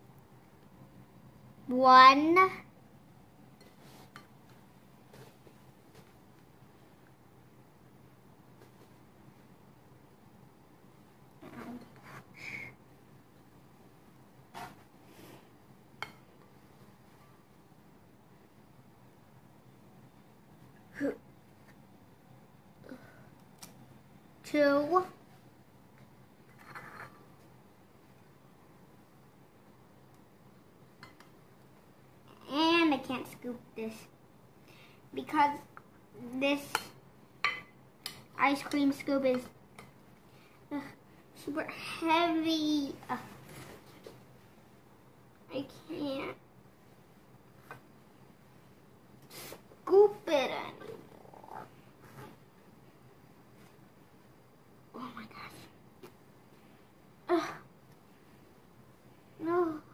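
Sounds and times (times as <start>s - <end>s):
child straining grunts: 57.3s - 57.7s.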